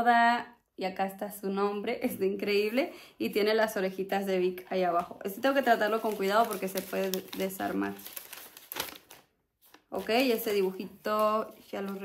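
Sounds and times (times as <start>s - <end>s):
paper rustling and crinkling: 5.4s - 12.0s.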